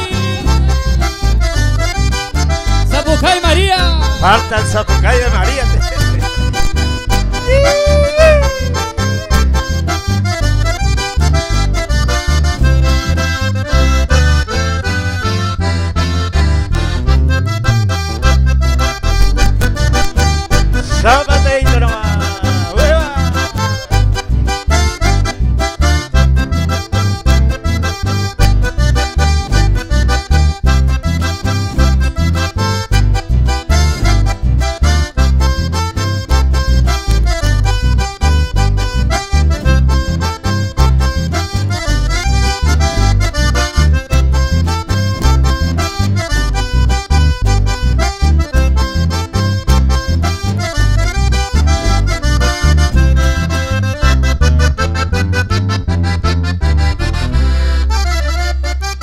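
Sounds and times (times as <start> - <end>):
strummed acoustic guitar: 0.0 - 7.7, 8.3 - 58.1
button accordion melody: 0.0 - 59.0
electric bass: 0.0 - 59.0.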